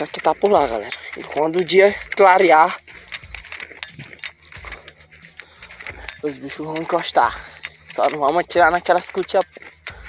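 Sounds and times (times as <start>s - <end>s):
gear clicking and rattling: 0.0s - 10.0s
soft footstep thumps: 0.0s - 10.0s.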